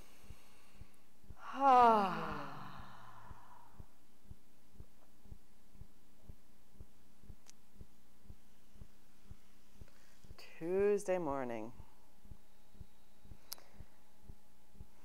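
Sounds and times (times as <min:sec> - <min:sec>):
faint steady hum: 0:00.0 - 0:15.0
woman sighing: 0:01.4 - 0:03.8
soft low ticks: 0:03.0 - 0:10.5, 0:12.2 - 0:15.0.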